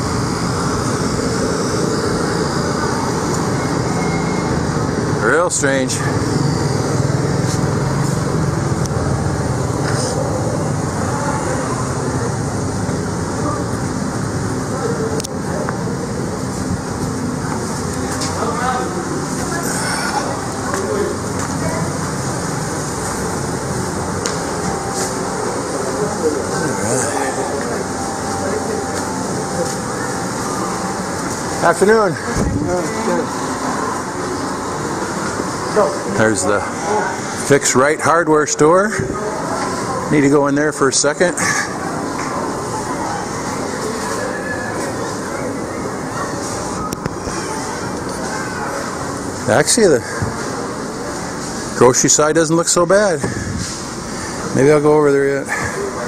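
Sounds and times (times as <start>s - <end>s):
busy store background din: 0.0s - 56.0s.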